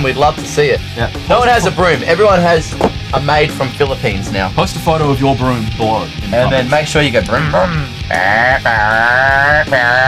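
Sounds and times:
man imitating car engine: 6.2 - 10.0.

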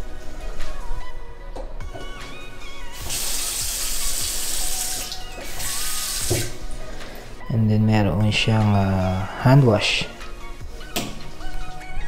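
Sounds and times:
faucet running into sink: 3.0 - 6.6.

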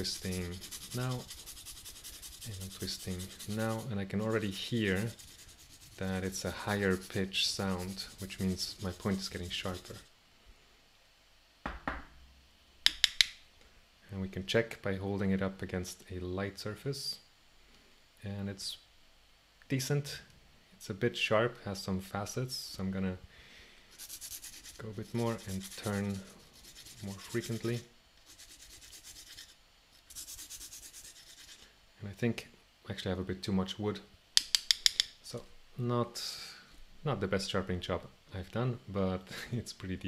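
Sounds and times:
pencil scratching on sandpaper: 0.0 - 10.0, 23.9 - 31.6
soft knock: 11.6 - 12.2
sharp clicks: 12.9 - 13.4.

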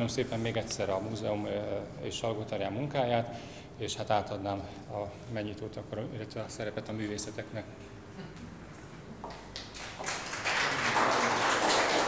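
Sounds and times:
audience applause: 9.6 - 12.0.

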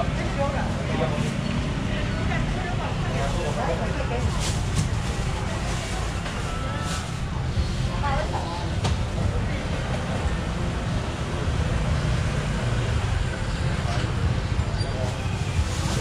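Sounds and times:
customer voices: 0.0 - 16.0
street traffic rumble: 0.0 - 16.0.

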